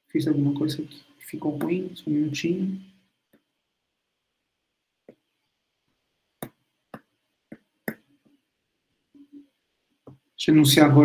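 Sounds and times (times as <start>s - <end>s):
stylus tapping tablet screen: 1.5s - 1.9s, 3.2s - 3.6s, 5.0s - 8.5s, 9.1s - 10.4s.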